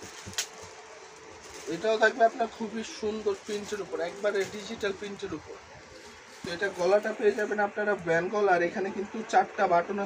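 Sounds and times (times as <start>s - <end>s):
person speaking: 1.6s - 10.0s.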